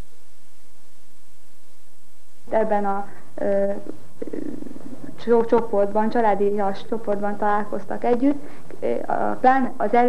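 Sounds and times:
low rough buzz: 0:00.0 - 0:10.0
woman speaking haltingly: 0:02.5 - 0:10.0.

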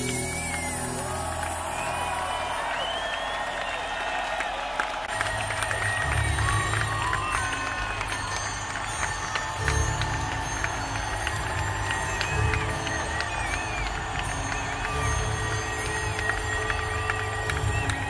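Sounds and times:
crowd cheering and clapping: 0:00.0 - 0:18.0
crowd whistling: 0:00.0 - 0:18.0.

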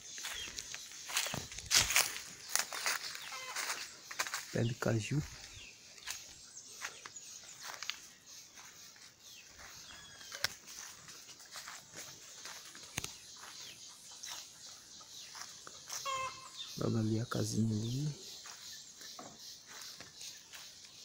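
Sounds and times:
birds chirping: 0:00.0 - 0:21.0
footsteps: 0:00.1 - 0:14.5, 0:17.8 - 0:20.9.

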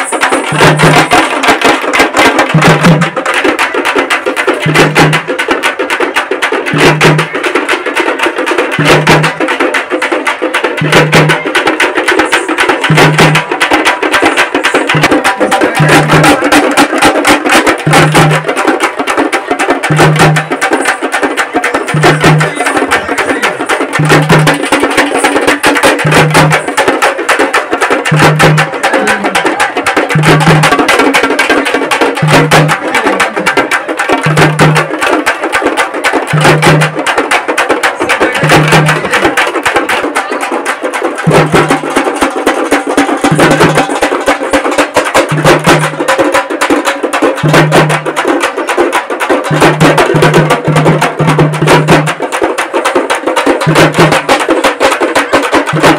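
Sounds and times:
rapid drum beating: 0:00.0 - 0:55.9.

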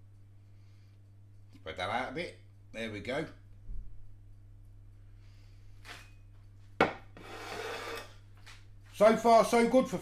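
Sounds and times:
kitchenware scraping and rubbing: 0:07.2 - 0:08.2.

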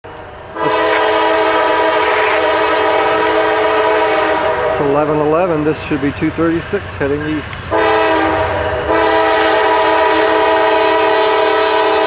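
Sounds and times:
locomotive air horn chord: 0:00.5 - 0:05.0, 0:07.7 - 0:12.0.

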